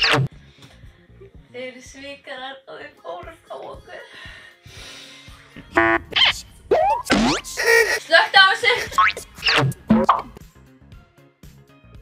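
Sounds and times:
springy rising boing: 0:06.0 - 0:07.6, 0:09.0 - 0:10.4.

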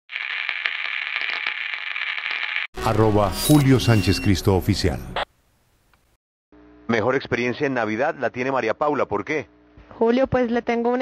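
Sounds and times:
static crackles and clicks: 0:00.1 - 0:02.7.

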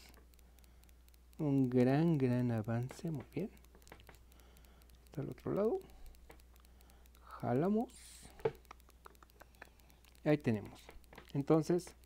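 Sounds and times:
light tick: 0:00.0 - 0:12.0.

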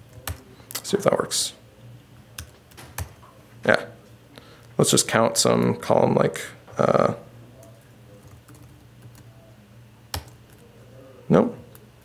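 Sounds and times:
computer keyboard keystrokes: 0:00.1 - 0:00.8, 0:02.4 - 0:03.2, 0:10.1 - 0:10.6.

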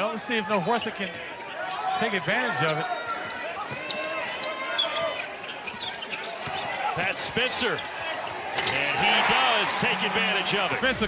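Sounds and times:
arena crowd noise: 0:00.0 - 0:11.0
sneakers squeaking on floor: 0:00.4 - 0:08.9.

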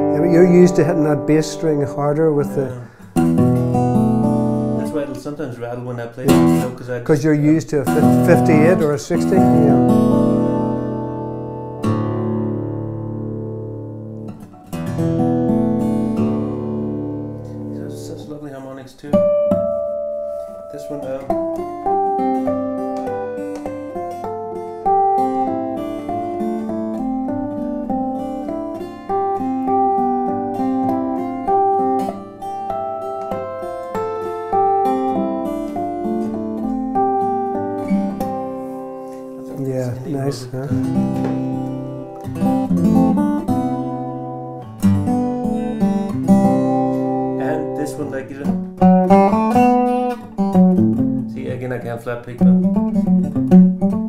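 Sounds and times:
fingerstyle acoustic guitar: 0:00.0 - 0:54.0
percussive hits on guitar: 0:21.3 - 0:25.1, 0:40.8 - 0:42.6.

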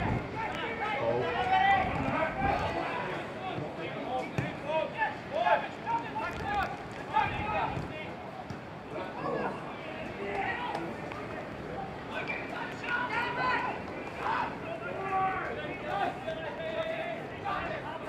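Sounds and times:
players shouting: 0:00.0 - 0:08.2, 0:08.8 - 0:18.0.

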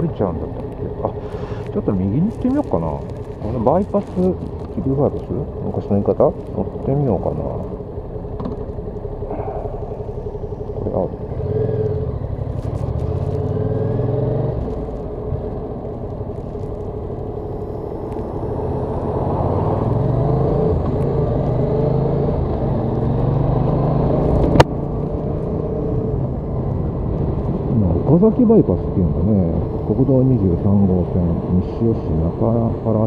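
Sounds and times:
motorcycle engine running: 0:00.0 - 0:33.0
road and wind noise: 0:00.0 - 0:33.0.

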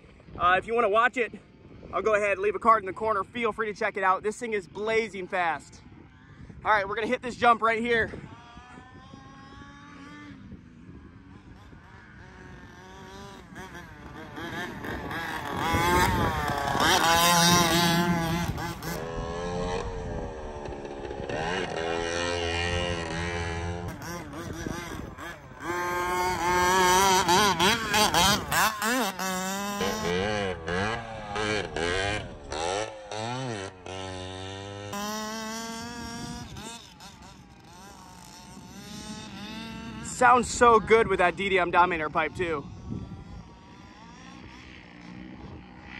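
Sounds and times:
rc truck engine revving: 0:08.1 - 0:45.9.

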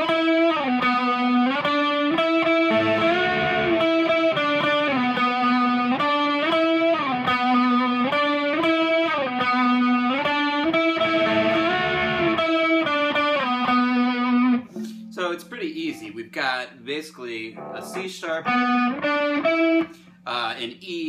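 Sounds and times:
electric guitar solo with chorus: 0:00.0 - 0:16.0, 0:17.5 - 0:20.0.

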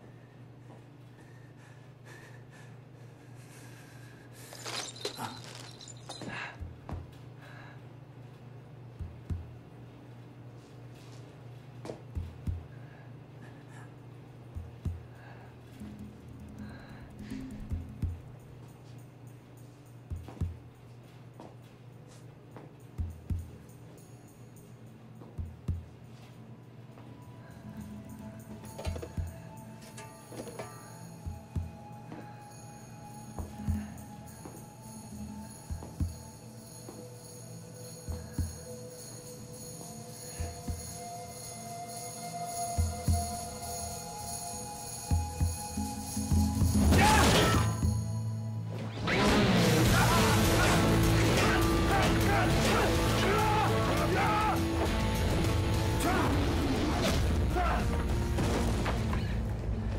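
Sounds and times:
suspenseful film score: 0:25.3 - 0:59.9.

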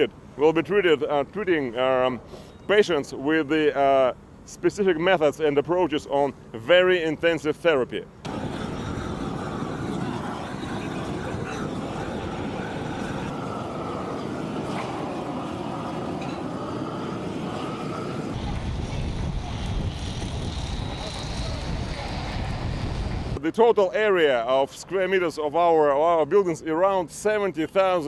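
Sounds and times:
construction site noise: 0:00.0 - 0:28.0
machinery rumbling: 0:08.3 - 0:23.4
roofing torch hissing: 0:08.3 - 0:23.4.

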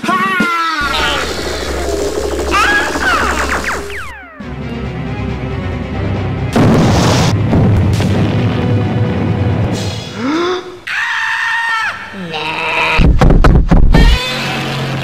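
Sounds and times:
film soundtrack music: 0:00.8 - 0:10.8.

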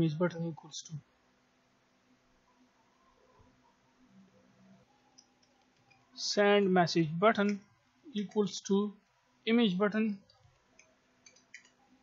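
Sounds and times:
computer keyboard clicks: 0:10.5 - 0:11.8.

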